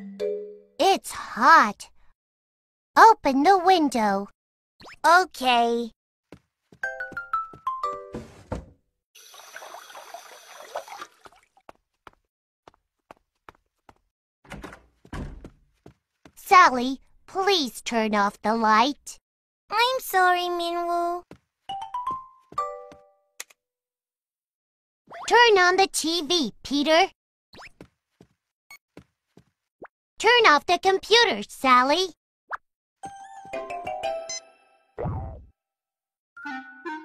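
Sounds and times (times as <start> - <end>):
cartoon music cue: 33.0 - 35.5, 36.4 - 37.0.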